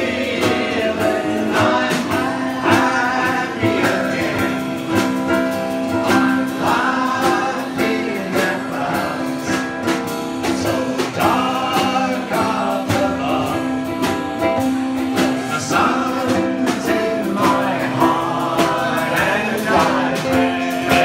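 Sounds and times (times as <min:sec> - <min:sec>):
group of men singing: 0:00.0 - 0:21.0
ukuleles strummed: 0:00.0 - 0:21.0.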